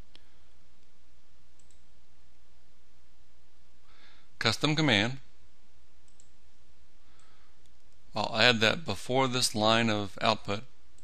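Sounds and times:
steady low hum: 0:00.0 - 0:11.0
computer mouse clicks: 0:01.6 - 0:01.9, 0:06.0 - 0:06.4.

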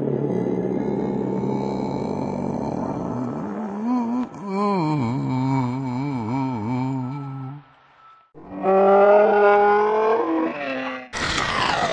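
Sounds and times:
person moaning a long note: 0:00.0 - 0:07.7.

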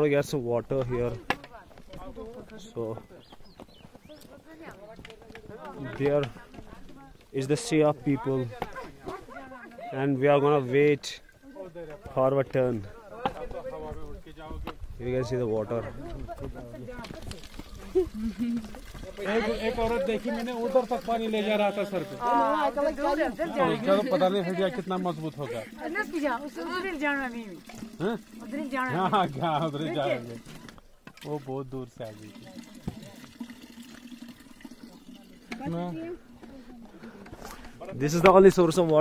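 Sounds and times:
people talking over each other: 0:00.0 - 0:30.8, 0:31.7 - 0:39.0
people talking at once: 0:15.1 - 0:30.5.

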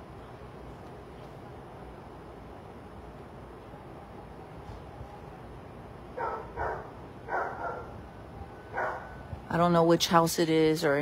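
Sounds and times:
outdoor background noise: 0:00.0 - 0:11.0
dog barking: 0:06.2 - 0:08.0, 0:08.7 - 0:09.2.

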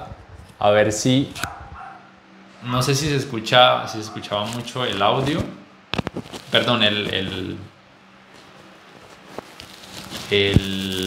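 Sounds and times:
fan blowing air hiss: 0:00.0 - 0:11.0
handling rustle on microphone: 0:04.0 - 0:11.0.

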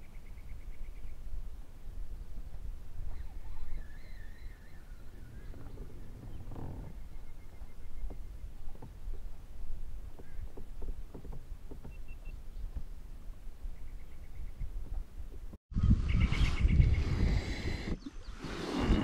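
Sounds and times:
wind rumbling on microphone: 0:00.0 - 0:19.0
water noise: 0:01.2 - 0:15.6, 0:16.6 - 0:19.0
faint bird chirps: 0:03.0 - 0:08.7.

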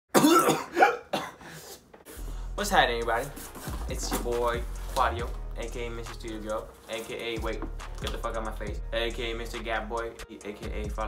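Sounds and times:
man coughing and clearing throat: 0:00.1 - 0:01.7.

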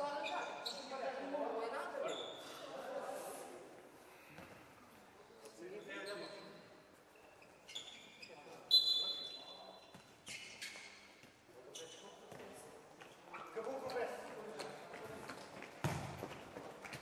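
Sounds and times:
referee whistle blast: 0:08.7 - 0:09.4
ball kicked and bouncing: 0:15.6 - 0:17.0.

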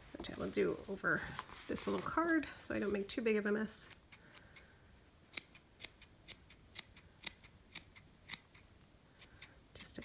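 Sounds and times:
small scissors snipping yarn: 0:03.8 - 0:04.7, 0:05.3 - 0:10.0.

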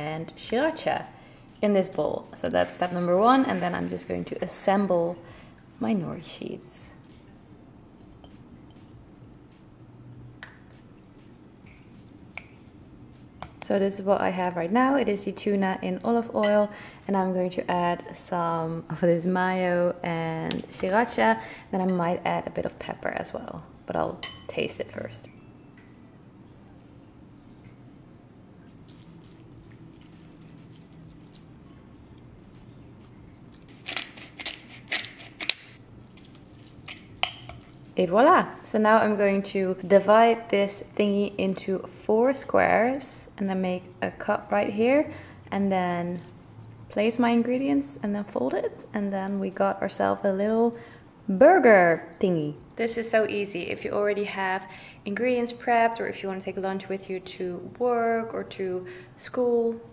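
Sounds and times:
pepper mill grinding: 0:33.7 - 0:35.8.

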